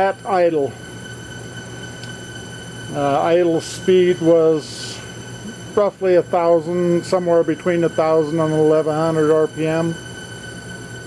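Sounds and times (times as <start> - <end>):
electric motor driving engine hum: 0.0 - 11.0.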